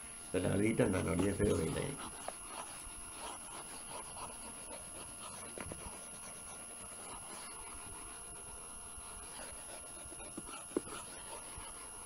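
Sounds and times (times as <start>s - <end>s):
stylus rubbing on tablet screen: 0.7s - 12.0s.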